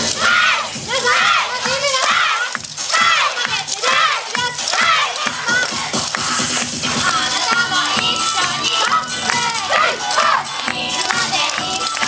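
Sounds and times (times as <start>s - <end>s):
up-tempo dance music: 0.0s - 12.0s
dancers shouting together: 0.1s - 5.9s, 7.9s - 10.6s.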